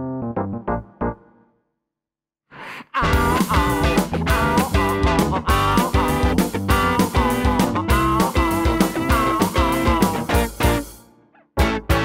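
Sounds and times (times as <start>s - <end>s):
band playing: 3.0s - 11.0s, 11.6s - 12.0s.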